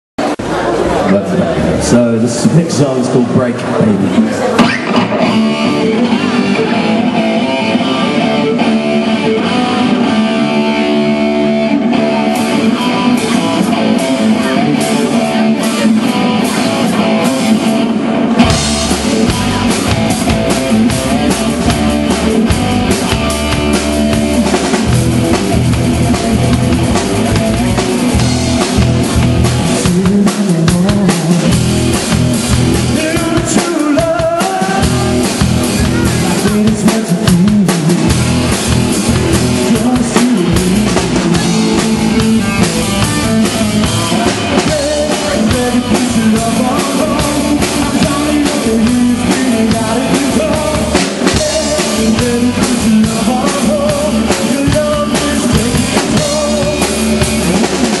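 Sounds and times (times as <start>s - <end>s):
bass guitar: 0.2s - 58.0s
electric guitar: 0.2s - 58.0s
live rock band: 0.2s - 58.0s
drum kit: 4.2s - 58.0s.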